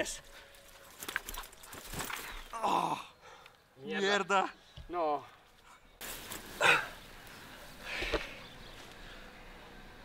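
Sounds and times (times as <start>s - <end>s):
low outdoor background: 0.0s - 10.0s.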